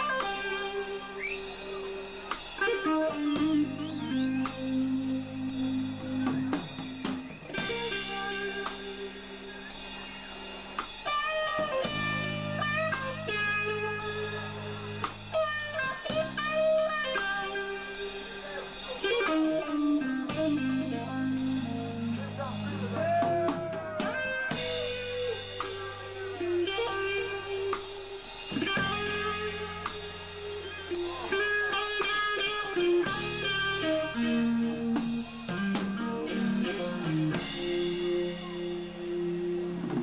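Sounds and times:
electric guitar bending notes: 0.0 - 9.9, 10.5 - 40.0
psychedelic rock band playing: 0.0 - 40.0.

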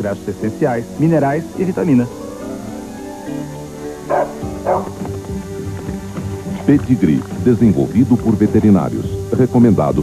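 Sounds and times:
background music: 0.0 - 10.0
dog barking: 4.1 - 5.0.

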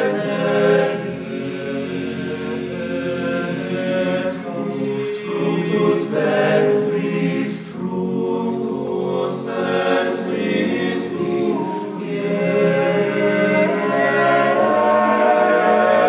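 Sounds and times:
male choir singing a cappella: 0.0 - 16.0.

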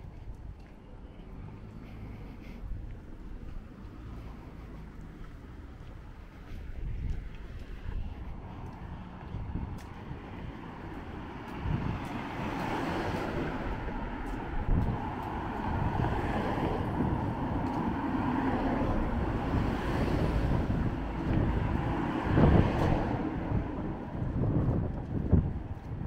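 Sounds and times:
wind buffeting microphone: 0.0 - 26.0
car driving past: 10.4 - 24.5.

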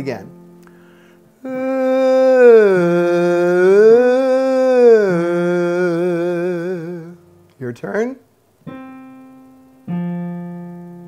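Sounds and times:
man singing one gliding tone: 1.4 - 7.4.

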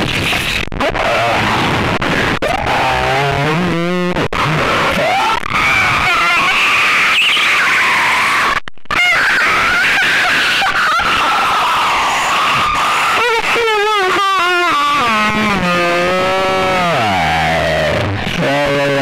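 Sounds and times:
distorted high-pitched scream: 0.0 - 19.0.

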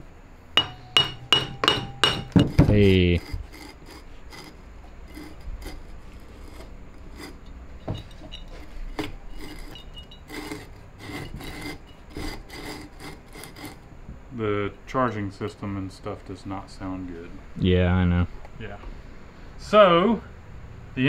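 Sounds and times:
metal-on-metal scraping: 0.6 - 13.9.

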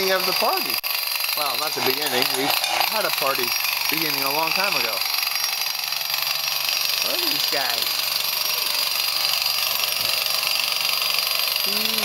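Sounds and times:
high-pitched mechanical rattling: 0.0 - 12.0.

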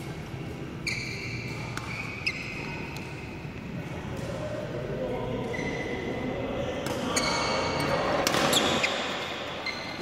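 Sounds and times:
hubbub in echoing hall: 0.0 - 10.0
shoe squeaks on court floor: 0.8 - 2.8, 8.4 - 10.0
rackets striking shuttlecock: 1.4 - 3.2.

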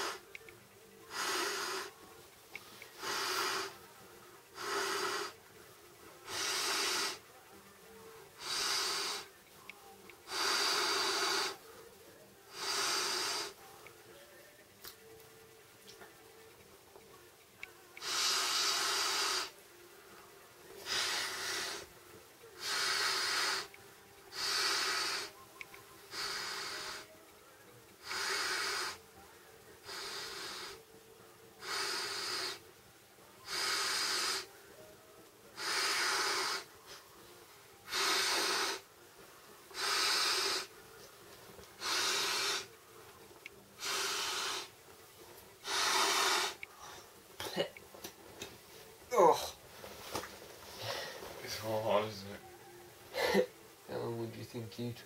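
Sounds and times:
breaths blown into air bed valve: 0.0 - 0.3, 1.1 - 2.0, 3.0 - 3.8, 4.5 - 5.4, 6.2 - 7.3, 8.4 - 9.3, 10.3 - 11.6, 12.5 - 13.7, 18.0 - 19.6, 20.8 - 21.9, 22.6 - 25.4, 26.1 - 27.2, 28.0 - 29.1, 29.8 - 30.9, 31.6 - 32.6, 33.4 - 34.6, 35.6 - 37.0, 37.8 - 38.9, 39.7 - 40.7, 41.8 - 42.8, 43.8 - 44.7, 45.6 - 46.7.

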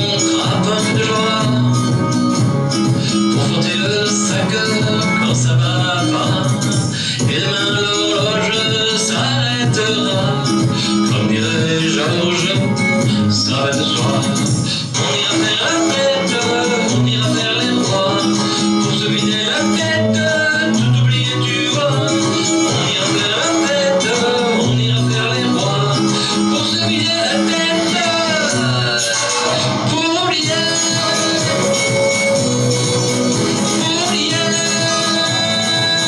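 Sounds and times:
guitar backing track: 0.0 - 36.0
man singing pop song: 0.0 - 36.0.

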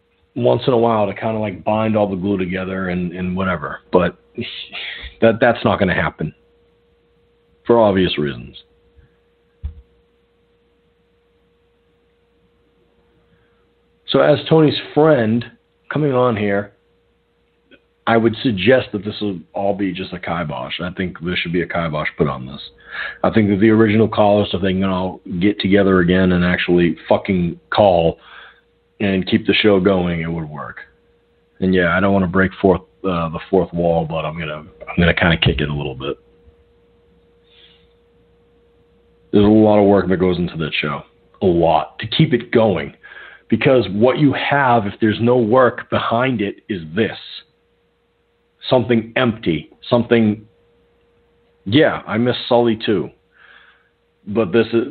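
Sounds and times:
faint steady tone: 0.0 - 54.9
spoken word: 3.1 - 6.3
soft breathy hiss: 4.4 - 5.2, 22.8 - 23.3, 28.2 - 28.7, 37.4 - 38.0, 43.0 - 43.6, 53.2 - 54.0.

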